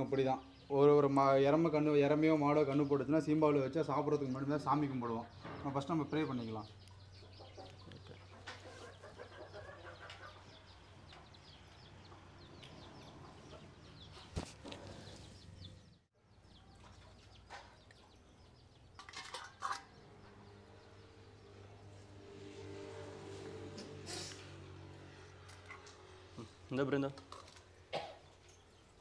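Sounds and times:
chickens clucking: 6.2 - 15.8.

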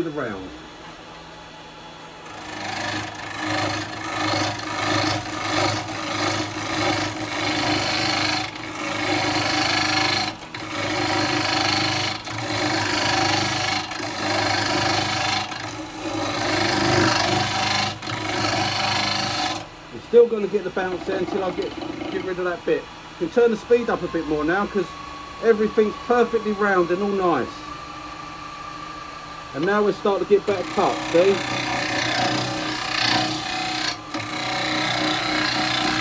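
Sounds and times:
lathe humming: 2.2 - 36.0
tool scraping wood on lathe: 2.3 - 19.6, 20.6 - 22.5, 29.6 - 36.0.

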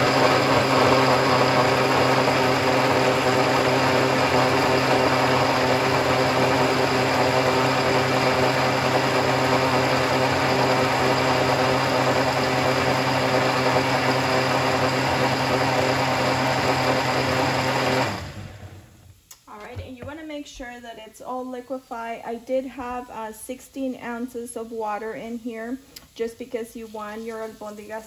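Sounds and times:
blender running at high speed: 0.0 - 18.9.

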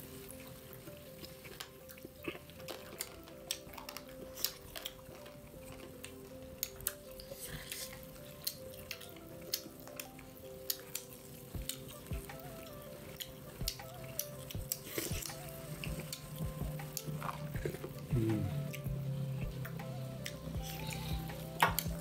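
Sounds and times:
chewing and lip-smacking: 0.0 - 22.0.

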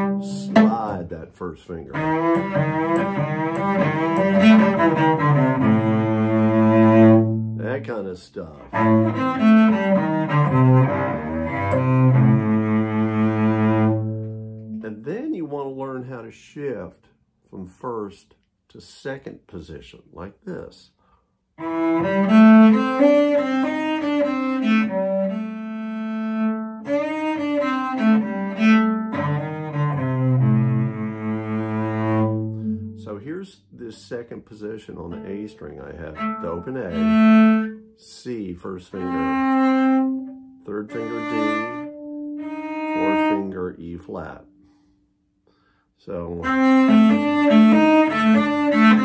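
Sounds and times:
cello playing blues lick: 0.0 - 16.5, 21.6 - 44.8, 46.1 - 49.0.

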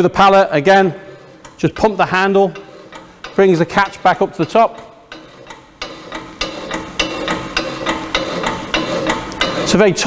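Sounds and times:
hydraulic hand pump clicking: 1.2 - 9.9.

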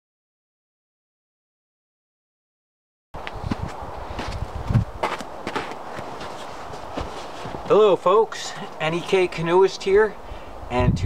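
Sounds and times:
footsteps crunching in snow: 3.2 - 9.2.

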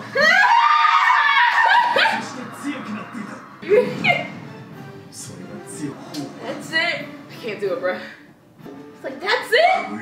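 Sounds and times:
woman shrieking with laughter: 0.0 - 2.2.

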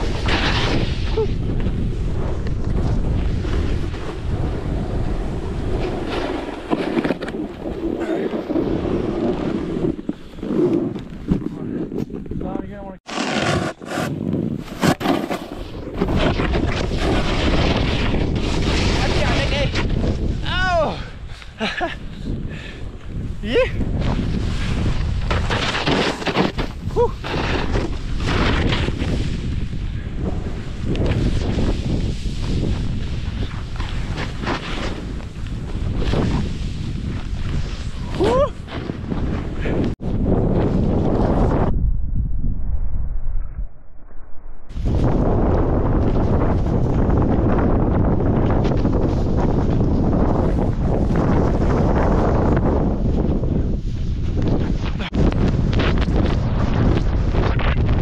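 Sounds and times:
snowboard scraping through snow: 0.0 - 12.1, 13.1 - 20.4, 22.6 - 41.7, 44.7 - 58.0
wind buffeting microphone: 0.0 - 13.0, 14.1 - 43.8, 44.7 - 58.0
person calling out: 20.4 - 21.0, 38.2 - 38.6.

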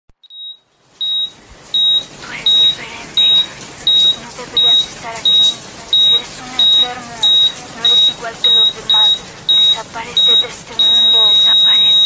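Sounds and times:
high electronic beeps: 0.2 - 12.0.

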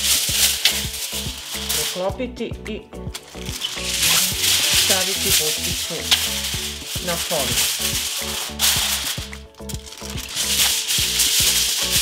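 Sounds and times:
aluminium foil crinkling: 0.0 - 2.2, 3.2 - 12.0
background music with steady beat: 0.0 - 12.0.

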